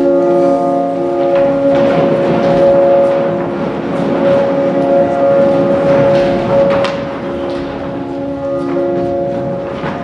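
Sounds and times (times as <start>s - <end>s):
dense noisy wash: 0.0s - 10.0s.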